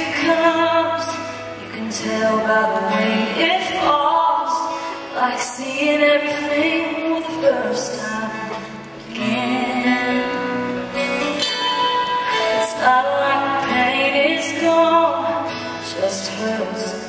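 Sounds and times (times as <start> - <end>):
woman singing slow song: 0.0 - 17.0.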